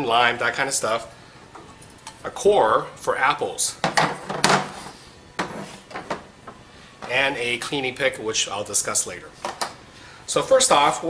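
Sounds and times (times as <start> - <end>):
plastic plates knocking on table: 3.8 - 4.8.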